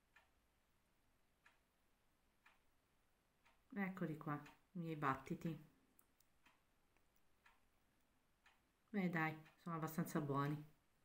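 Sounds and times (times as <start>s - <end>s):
faint clicks: 1.4s - 1.7s, 2.4s - 2.7s.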